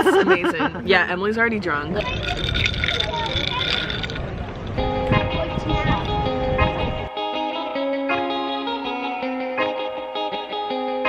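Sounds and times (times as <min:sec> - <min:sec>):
faint voices: 0:00.0 - 0:07.2
wind buffeting microphone: 0:00.3 - 0:07.2.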